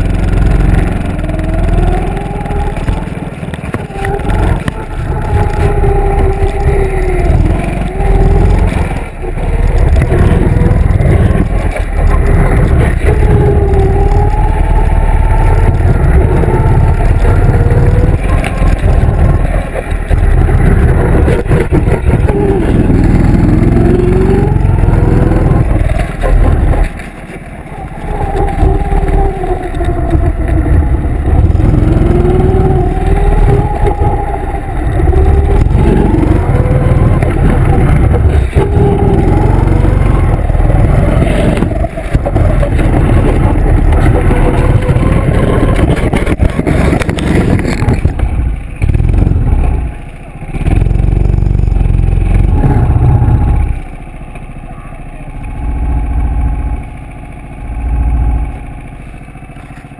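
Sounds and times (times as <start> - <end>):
go-kart engine revving: 0.0 - 59.9.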